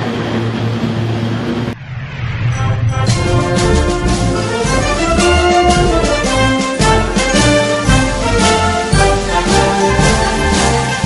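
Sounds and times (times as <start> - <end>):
turboprop engine drone: 0.0 - 11.0.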